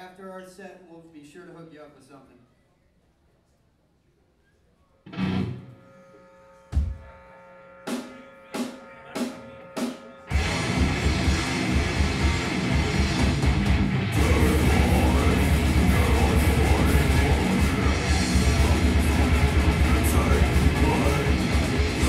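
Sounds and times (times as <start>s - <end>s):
heavy metal band playing: 5.1s - 5.6s, 7.9s - 22.0s.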